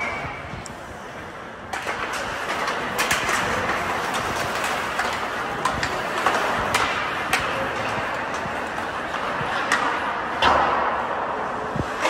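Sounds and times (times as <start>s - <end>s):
skate blades scraping ice: 0.0s - 10.4s
sticks and puck clacking: 0.0s - 12.0s.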